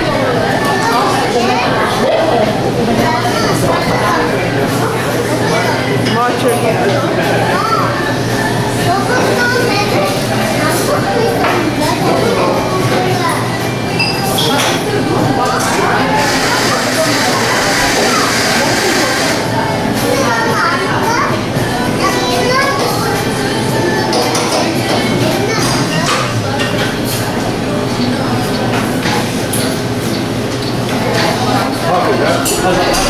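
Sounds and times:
crowd chatter in a shop: 0.0s - 33.0s.

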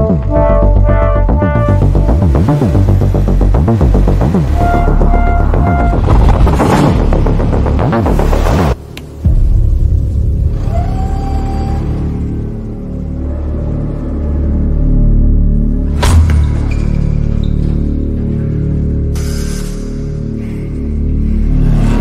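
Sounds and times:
dramatic soundtrack music: 0.0s - 22.0s.

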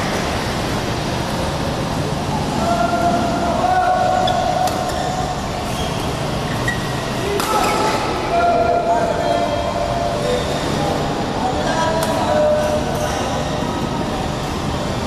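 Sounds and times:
murmur of voices: 1.4s - 15.0s.

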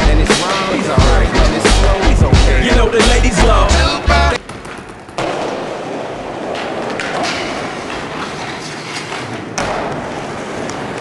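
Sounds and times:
skateboard wheels rolling on wood: 4.3s - 11.0s
skateboard thud: 4.4s - 8.1s, 9.5s - 10.8s.

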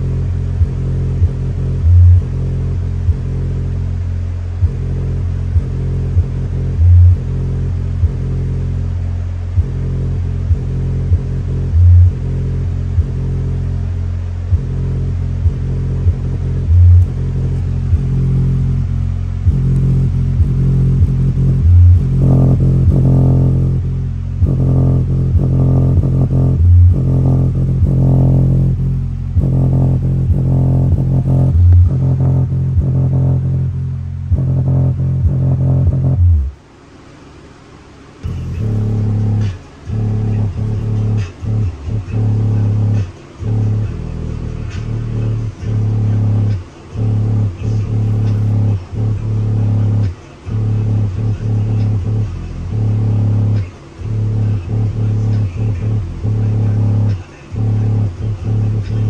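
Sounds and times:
bass-heavy music from speaker: 0.0s - 36.7s, 38.0s - 59.0s.

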